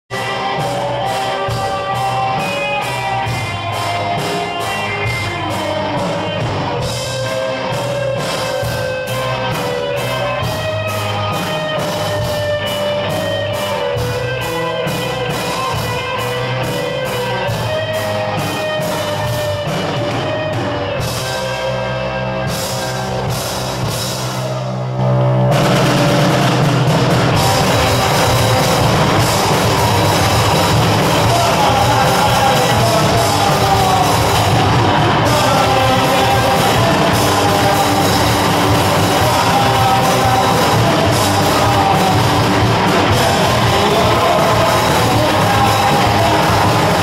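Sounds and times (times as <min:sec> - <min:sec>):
rock band playing: 0:00.0 - 0:47.0.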